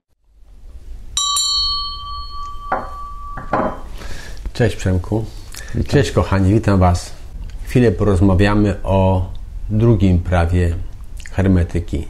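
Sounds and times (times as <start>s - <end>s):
brass hand bell ringing: 1.2s - 4.0s.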